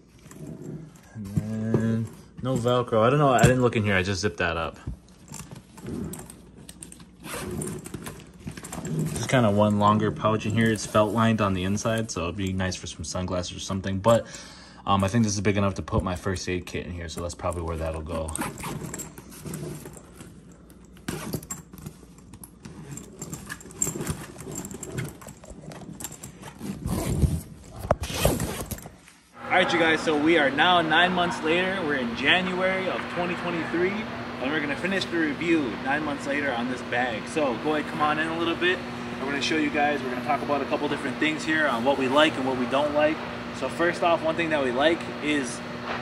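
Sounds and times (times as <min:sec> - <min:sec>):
zipper rasping: 0:00.0 - 0:02.4, 0:05.1 - 0:11.4, 0:18.2 - 0:29.3
zipper pulls clinking: 0:00.0 - 0:03.9, 0:05.0 - 0:12.1, 0:17.5 - 0:29.3.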